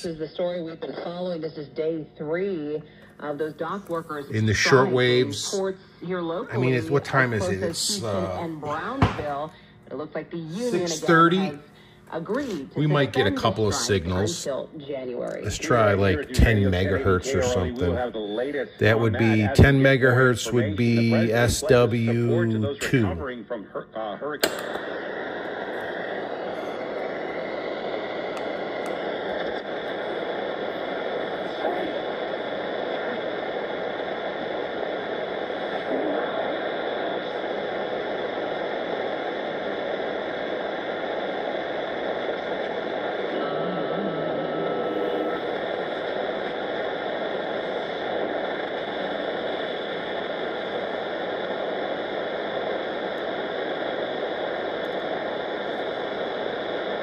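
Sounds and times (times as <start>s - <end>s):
shortwave radio static hiss: 0.0s - 57.0s
faint radio whistle: 24.3s - 57.0s.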